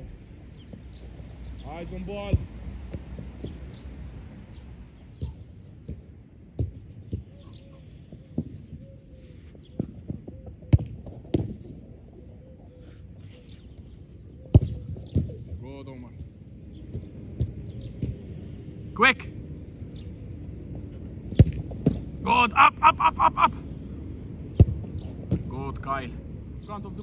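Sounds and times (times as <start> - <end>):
football being kicked: 5.2 - 7.5, 10.7 - 11.7, 14.5 - 15.5, 21.3 - 22.1, 24.6 - 25.5
ball hitting gloves: 14.5 - 15.4.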